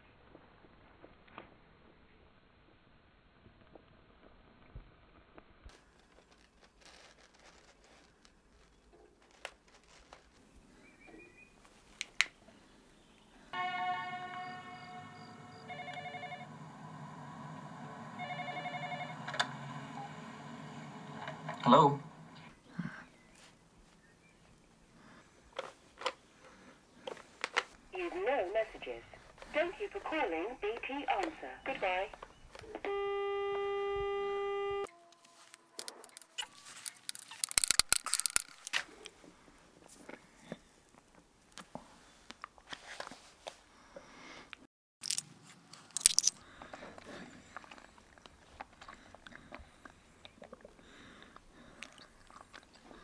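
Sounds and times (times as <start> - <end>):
clicks: 13.6 - 22.5
telephone ringing: 13.6 - 22.5.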